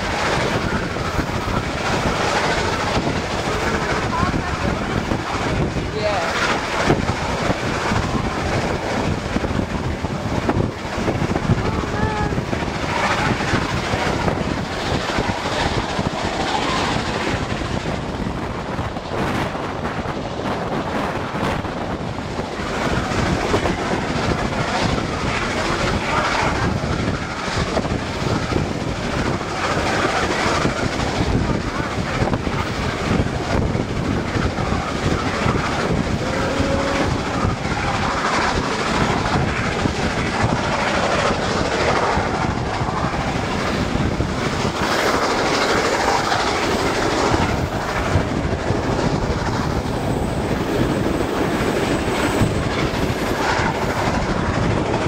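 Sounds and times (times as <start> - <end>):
train wheels rumbling on rails: 0.0 - 55.0.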